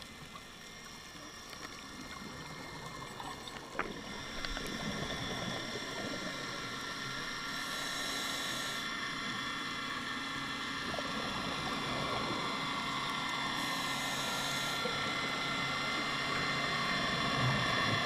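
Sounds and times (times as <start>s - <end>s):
boat motor drone underwater: 0.0s - 18.0s
scuba regulator breath hiss: 7.6s - 8.9s, 13.6s - 15.0s.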